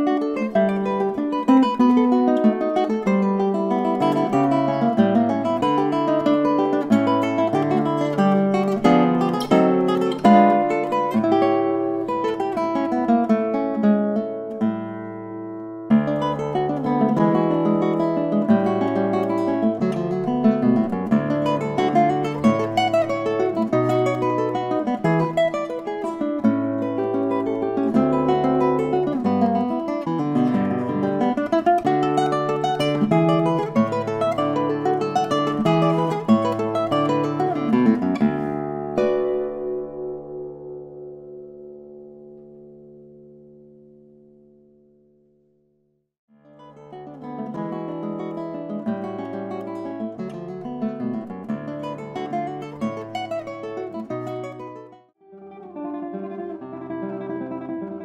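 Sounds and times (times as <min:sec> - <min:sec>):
classical guitar playing: 0:00.0 - 0:58.0.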